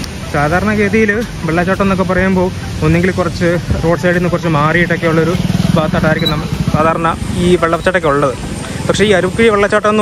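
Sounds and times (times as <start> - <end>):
motorcycle engine running: 4.0 - 9.4.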